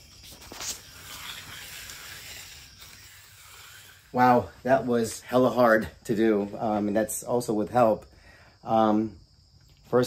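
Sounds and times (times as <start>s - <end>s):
edger scraping wet concrete: 0.0s - 5.9s.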